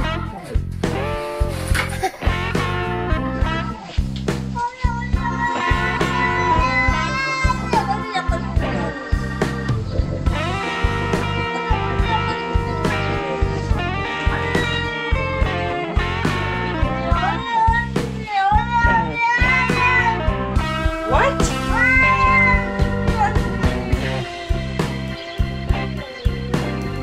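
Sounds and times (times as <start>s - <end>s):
background music with steady beat: 0.0s - 27.0s
cat meowing: 4.6s - 8.8s, 17.2s - 23.6s.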